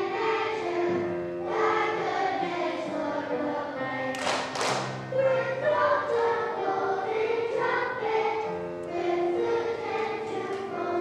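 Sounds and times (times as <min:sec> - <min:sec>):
children's choir singing: 0:00.0 - 0:11.0
piano accompaniment: 0:00.0 - 0:11.0.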